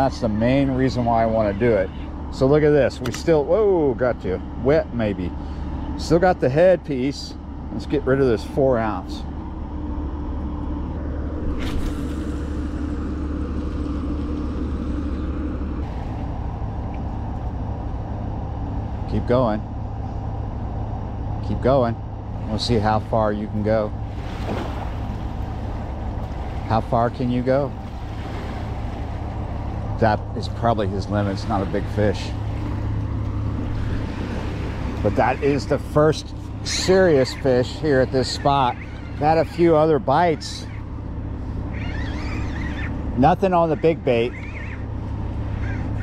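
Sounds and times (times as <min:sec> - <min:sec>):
ship engine rumble: 0:00.0 - 0:46.0
water washing against bank: 0:22.3 - 0:46.0.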